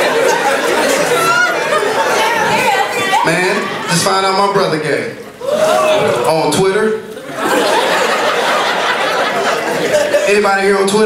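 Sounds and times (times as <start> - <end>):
audience laughing and chattering: 0.0 - 11.0.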